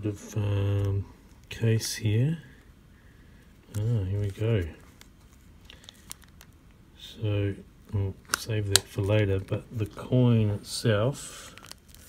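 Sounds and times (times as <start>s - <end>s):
plastic bag crinkling: 3.6s - 6.8s, 11.4s - 12.0s.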